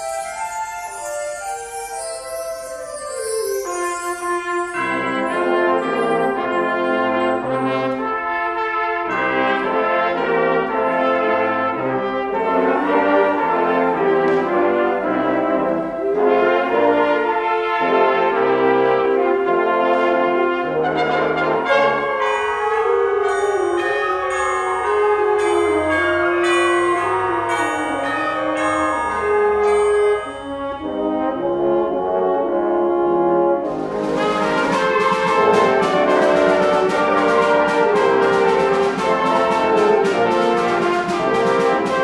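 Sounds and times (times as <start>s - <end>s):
high percussion strokes: 0.0s - 11.2s, 21.2s - 32.4s, 33.6s - 42.0s
wind band playing chords: 0.0s - 42.0s.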